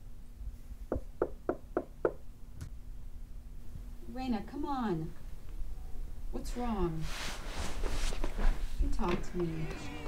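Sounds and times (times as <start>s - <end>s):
knuckles knocking on door: 0.9s - 2.2s.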